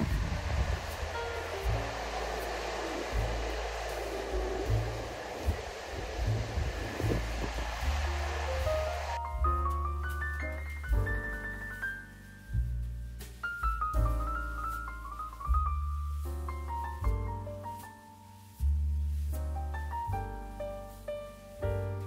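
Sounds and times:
waterfall rushing over rock: 0:00.0 - 0:09.5
background music with low notes: 0:00.0 - 0:22.0.

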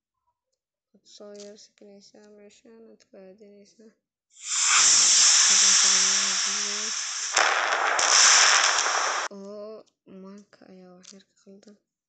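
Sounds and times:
loud hissing noise burst: 0:04.4 - 0:09.3.

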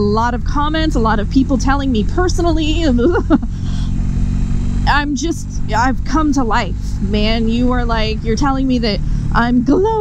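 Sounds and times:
woman speaking: 0:00.0 - 0:03.9, 0:04.9 - 0:10.0
motorcycle engine cruising: 0:00.0 - 0:10.0
wind and road noise: 0:00.0 - 0:10.0.

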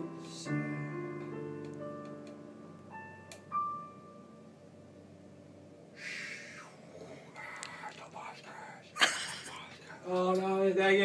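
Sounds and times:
digital piano high notes: 0:00.0 - 0:05.0.

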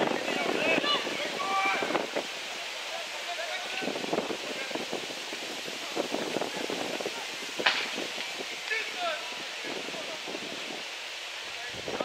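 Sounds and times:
wind noise on microphone: 0:00.0 - 0:02.5, 0:03.5 - 0:12.0
distant shouts of players: 0:00.1 - 0:04.0.

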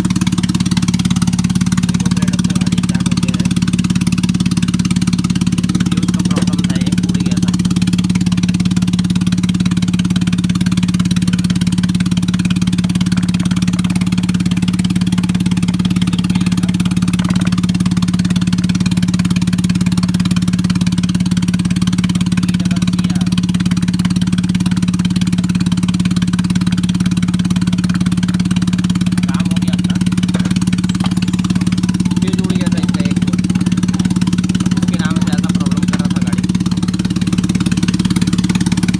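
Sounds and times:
car engine idling: 0:00.0 - 0:38.9.

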